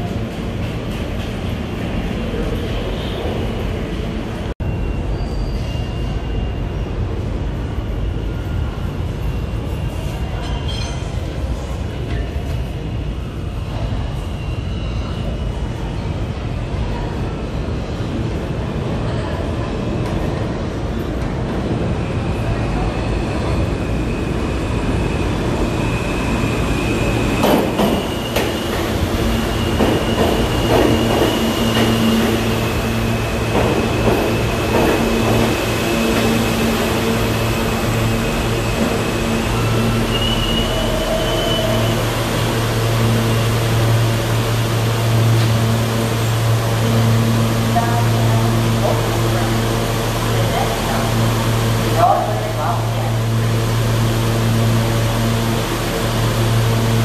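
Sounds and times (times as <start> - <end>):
low steady train hum: 0.0 - 57.0
train rumble: 0.0 - 57.0
high steady squeal: 25.2 - 44.9.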